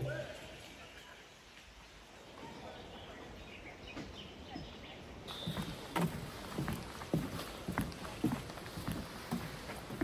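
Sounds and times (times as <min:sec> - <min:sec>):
footsteps on wooden boards: 0:05.3 - 0:10.0.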